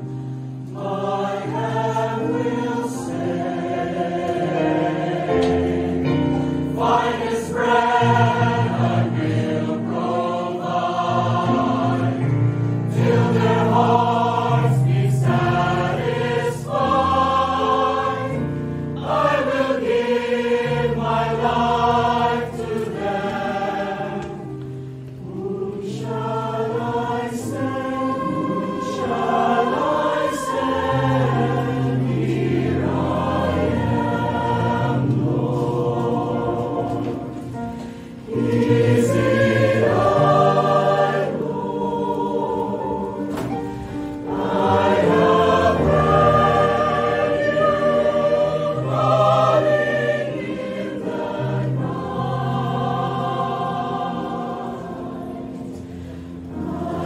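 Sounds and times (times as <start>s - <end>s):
mixed choir singing: 0.0s - 57.0s.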